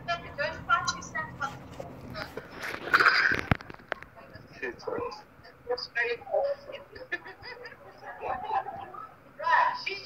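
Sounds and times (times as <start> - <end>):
people speaking in a hall: 0.0 - 10.0.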